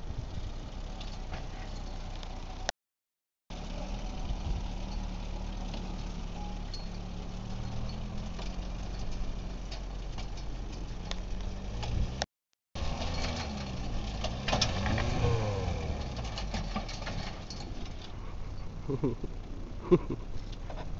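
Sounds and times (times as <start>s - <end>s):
tractor engine running and revving: 0.0s - 2.7s, 3.5s - 20.9s.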